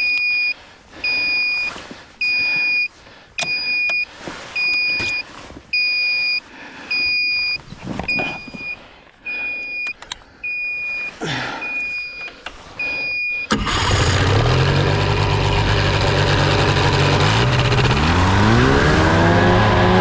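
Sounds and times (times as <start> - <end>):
short electronic beeps: 0.0 - 13.6
engine starting and idling: 13.5 - 19.2.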